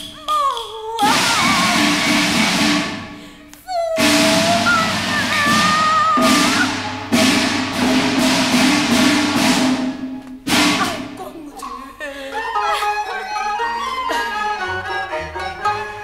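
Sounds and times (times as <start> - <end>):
percussion crashes: 0.0 - 11.8.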